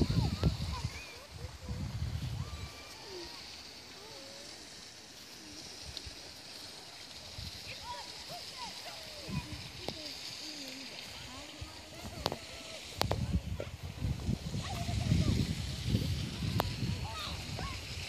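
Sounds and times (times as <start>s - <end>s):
steady background hiss: 0.0s - 18.0s.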